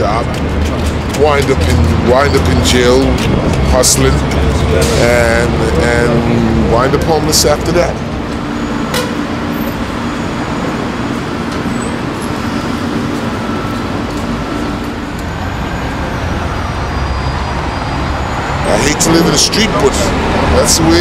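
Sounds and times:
city street traffic: 0:00.0 - 0:21.0.

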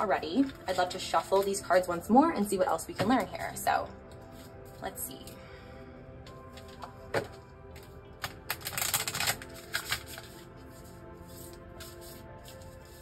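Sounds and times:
soft background music: 0:00.0 - 0:13.0
cards being shuffled: 0:06.3 - 0:13.0.

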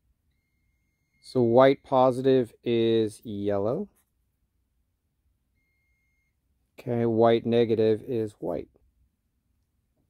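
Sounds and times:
multimeter continuity beep: 0:00.2 - 0:02.4, 0:05.4 - 0:06.5.

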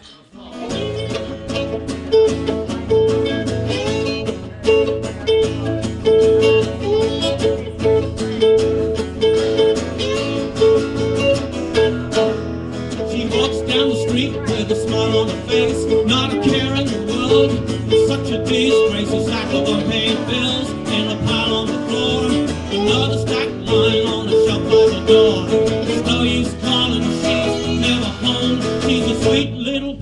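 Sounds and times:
electric guitars: 0:00.0 - 0:30.0
strummed acoustic guitar: 0:00.0 - 0:30.0
steady drum beat: 0:13.8 - 0:29.4.

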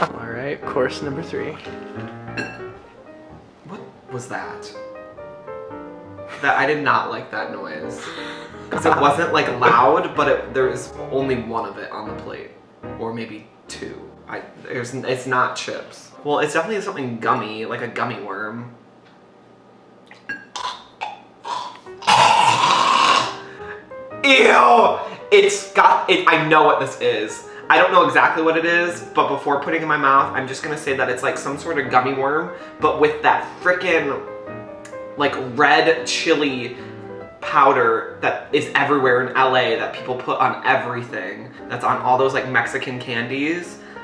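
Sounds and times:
plucked string music: 0:08.6 - 0:13.0
mouth and throat noises: 0:20.1 - 0:23.4
person gagging: 0:21.5 - 0:23.5.

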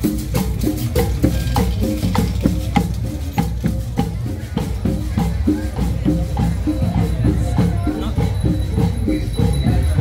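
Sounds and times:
snare drums: 0:00.0 - 0:07.8
bass drums: 0:00.0 - 0:10.0.

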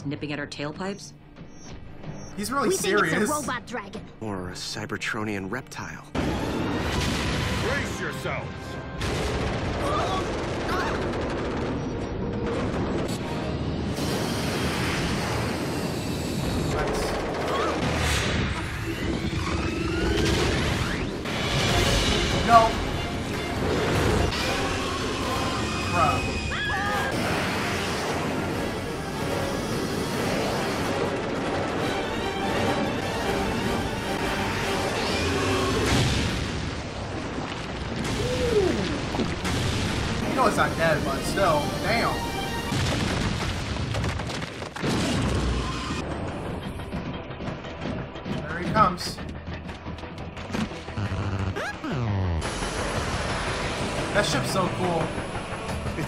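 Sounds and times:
dramatic music: 0:00.0 - 0:44.2, 0:44.8 - 0:56.0
booms and crashes: 0:09.0 - 0:15.6, 0:34.8 - 0:46.7.

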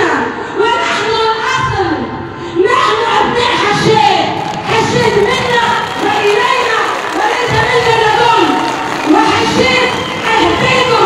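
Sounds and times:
crowd noise: 0:00.0 - 0:11.0
woman shouting over public address: 0:00.0 - 0:11.0.

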